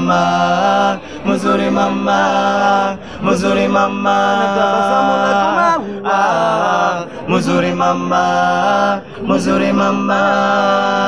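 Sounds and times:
men singing a cappella: 0:00.0 - 0:11.0.

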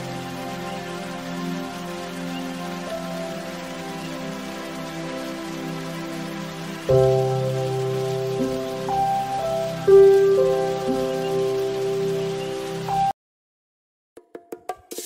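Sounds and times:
slow music with held chords: 0:00.0 - 0:13.1.

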